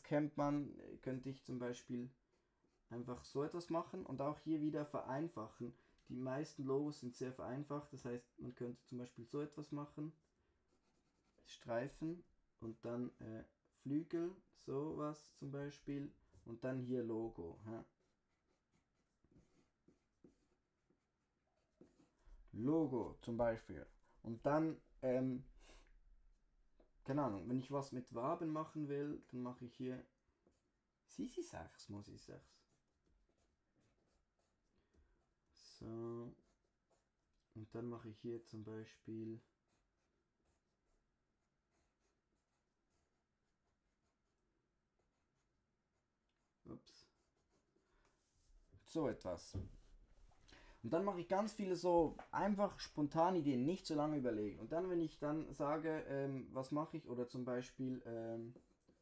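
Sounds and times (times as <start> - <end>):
pencil scratching on paper: 1.0 - 13.9, 14.5 - 50.2, 51.0 - 59.0.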